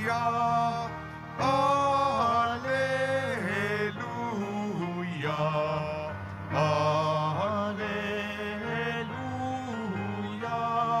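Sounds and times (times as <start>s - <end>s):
gospel singing in held notes: 0.0s - 11.0s
sustained keyboard chords: 0.0s - 11.0s.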